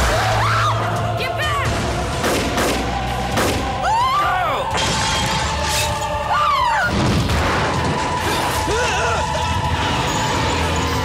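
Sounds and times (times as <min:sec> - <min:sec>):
low music drone: 0:00.0 - 0:11.0.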